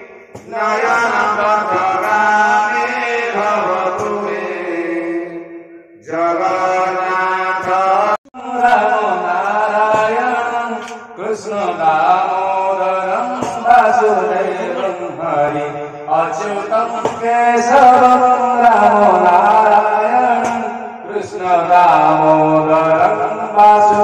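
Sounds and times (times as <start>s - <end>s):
men chanting into a microphone: 0.0s - 24.0s.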